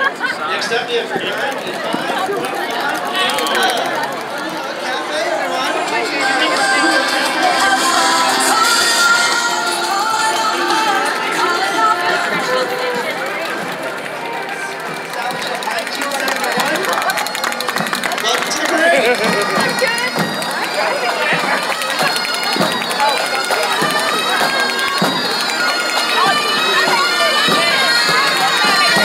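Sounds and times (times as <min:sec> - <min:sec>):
street crowd chatter: 0:00.0 - 0:29.0
bagpipes playing: 0:05.0 - 0:29.0.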